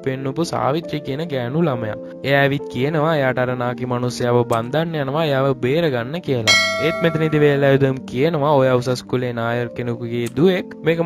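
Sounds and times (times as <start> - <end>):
bell-like metallic chime: 6.5 - 7.8
person talking: 6.5 - 7.9.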